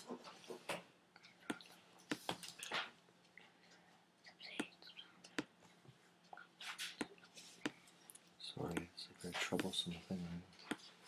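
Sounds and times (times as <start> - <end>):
soft whispering: 3.4 - 11.0.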